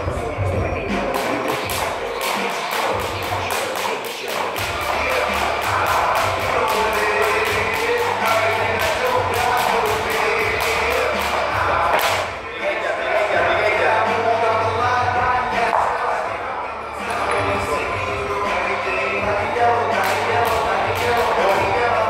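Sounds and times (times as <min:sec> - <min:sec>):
background music: 0:00.0 - 0:22.0
jump rope slapping the floor: 0:01.1 - 0:12.2, 0:20.0 - 0:21.4.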